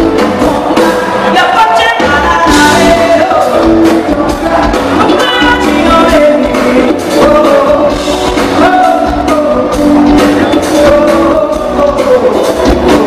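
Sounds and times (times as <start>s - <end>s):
bass guitar: 0.0s - 13.0s
drum kit: 0.0s - 13.0s
electric guitar: 0.0s - 13.0s
woman singing: 0.0s - 13.0s.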